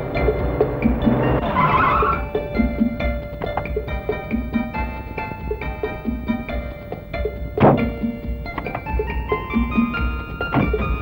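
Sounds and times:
film background music: 0.0s - 11.0s
car door shutting: 10.5s - 11.0s.

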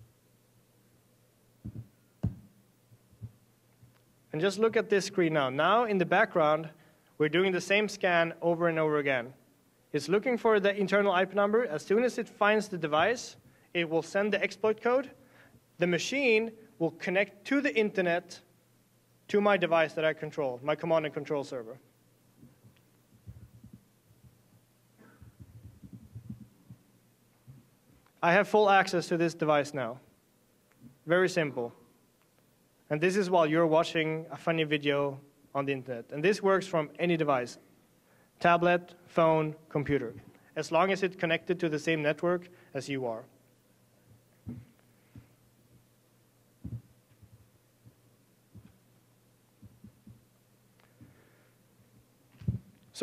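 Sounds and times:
steady low hum: 0.0s - 53.0s
faint low thuds: 1.6s - 3.4s, 25.2s - 26.8s, 46.6s - 48.8s, 49.6s - 50.3s.

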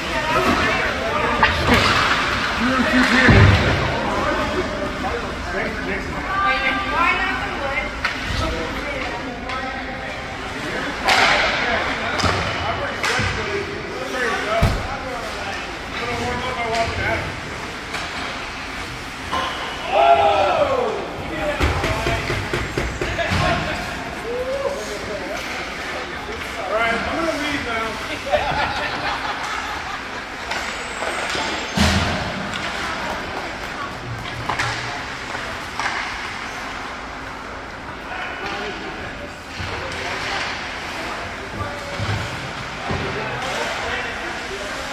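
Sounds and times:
players shouting: 19.3s - 22.3s.

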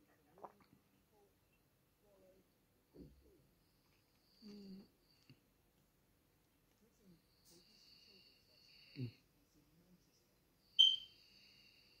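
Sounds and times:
high-pitched whistle-like tone: 10.8s - 11.2s.

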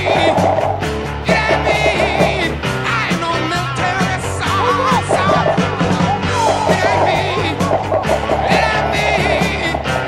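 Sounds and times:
rock music: 0.0s - 10.0s.

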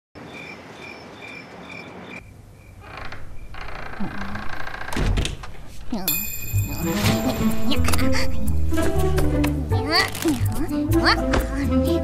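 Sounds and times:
cricket chirping: 0.2s - 2.8s.

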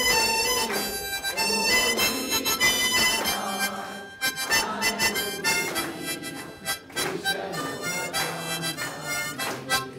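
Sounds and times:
people clapping along: 0.0s - 9.9s
group singing in unison: 0.1s - 9.9s.

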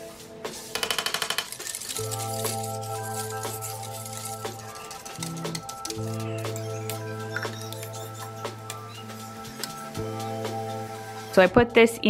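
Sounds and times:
whisk clinking against metal pot: 1.4s - 8.4s
slow sustained chords music: 1.9s - 12.0s.

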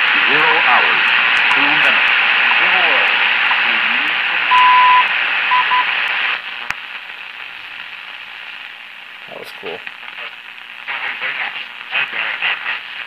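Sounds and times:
radio hiss and static: 0.0s - 13.0s
time signal beeps: 4.5s - 5.9s.

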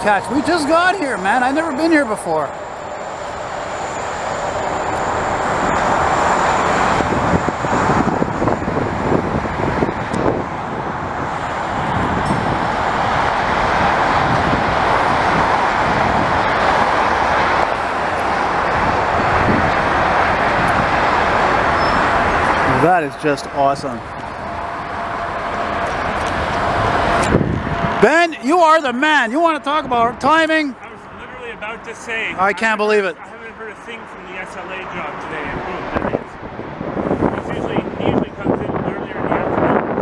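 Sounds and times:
diesel locomotives running: 0.0s - 40.0s
highway traffic noise: 0.0s - 40.0s.

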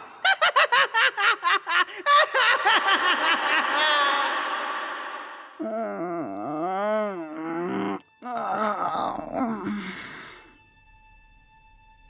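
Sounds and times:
person groaning: 3.7s - 4.4s, 5.6s - 10.4s
strained wailing cry: 5.6s - 10.0s.

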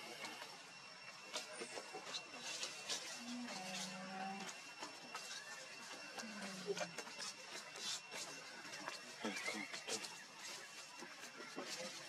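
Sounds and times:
monkeys squealing and chattering: 5.1s - 10.8s.

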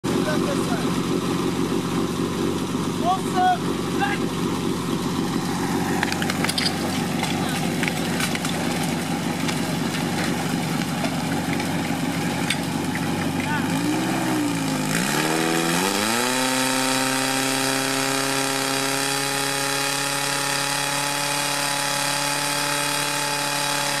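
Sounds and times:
fire pump engine running: 0.0s - 24.0s.

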